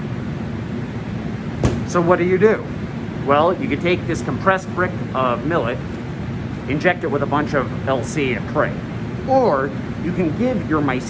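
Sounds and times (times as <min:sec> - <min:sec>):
room noise rumble and hiss: 0:00.0 - 0:11.0.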